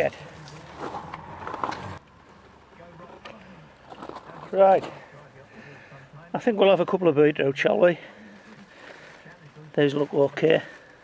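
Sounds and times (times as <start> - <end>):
faint outdoor background: 0.0 - 11.0
rustling leaves and soil: 0.0 - 11.0.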